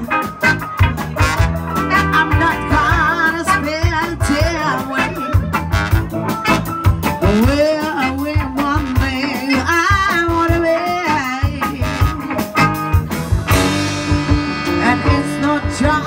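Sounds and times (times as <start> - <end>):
soul band playing: 0.0 - 16.0
woman singing: 1.8 - 5.5, 7.2 - 12.3, 14.6 - 16.0
loud band hit: 12.0 - 16.0.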